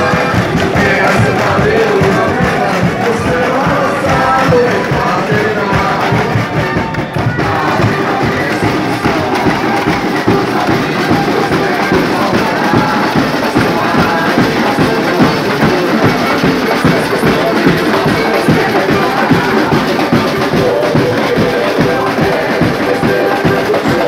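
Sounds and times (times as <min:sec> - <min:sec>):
crowd noise: 0:00.0 - 0:24.0
drums beating samba rhythm: 0:00.0 - 0:24.0.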